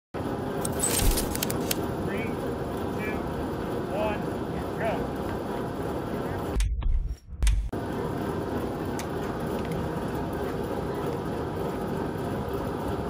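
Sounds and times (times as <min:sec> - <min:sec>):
sharp clicks: 0:00.6 - 0:01.8.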